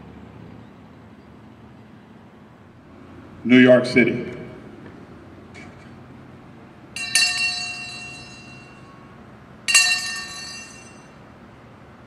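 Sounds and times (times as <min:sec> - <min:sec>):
brass hand bell ringing: 0:07.0 - 0:09.1, 0:09.7 - 0:11.2.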